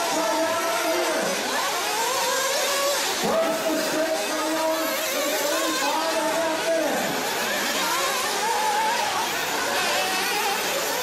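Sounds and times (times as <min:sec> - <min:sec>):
small nitro engines revving: 0:00.0 - 0:11.0.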